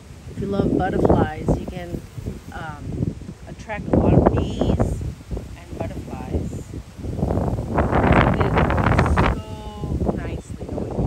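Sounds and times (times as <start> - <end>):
plants rustling in wind: 0.0 - 11.0
wind buffeting microphone: 0.0 - 11.0.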